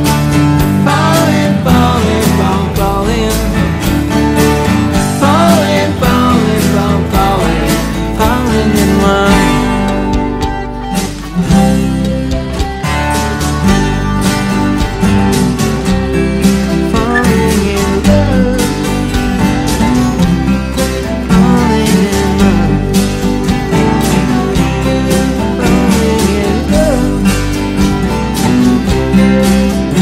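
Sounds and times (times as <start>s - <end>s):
bass backing track: 0.0s - 30.0s
bending lead melody: 0.0s - 30.0s
twelve-string acoustic guitar: 0.0s - 30.0s.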